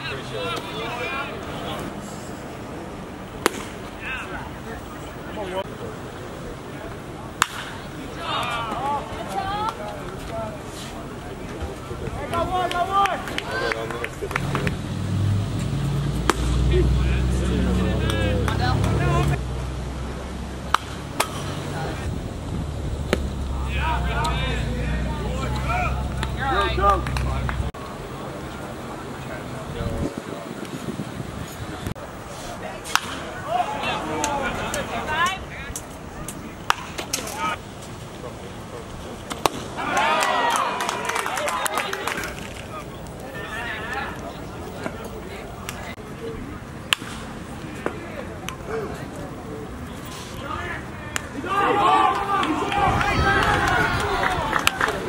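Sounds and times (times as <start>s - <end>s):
people shouting and cheering: 7.9s - 10.3s, 11.6s - 14.7s, 23.4s - 27.7s, 33.2s - 37.6s, 39.6s - 46.0s, 50.3s - 55.0s
people calling out: 8.0s - 10.0s, 23.5s - 27.7s, 50.4s - 55.0s
sharp hand claps: 52.1s - 55.0s.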